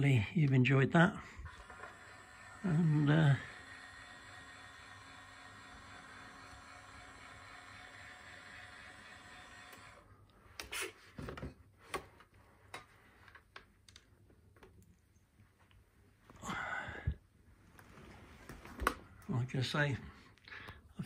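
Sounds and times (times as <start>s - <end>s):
electric drive whine: 1.1s - 10.4s.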